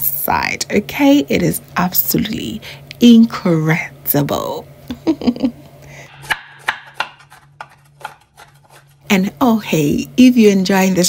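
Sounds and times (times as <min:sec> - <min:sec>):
knife chopping on wooden board: 0:06.1 - 0:09.0.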